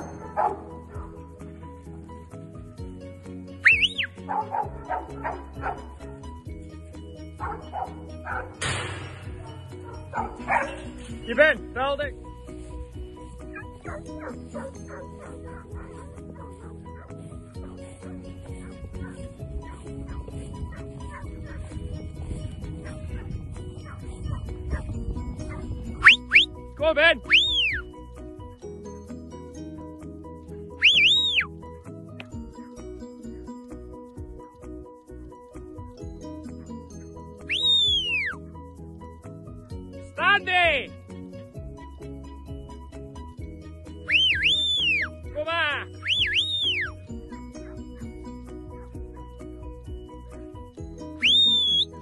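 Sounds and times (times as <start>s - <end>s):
faint background music: 0.0s - 52.0s
sharp rising whistle blasts: 3.6s - 4.1s, 30.8s - 31.5s, 37.5s - 38.3s, 44.1s - 45.1s, 46.0s - 46.9s, 51.2s - 51.9s
wind rumble on microphone: 17.6s - 26.4s.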